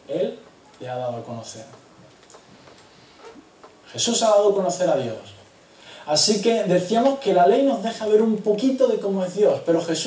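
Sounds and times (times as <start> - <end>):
faint clicks: 1.7 - 2.9.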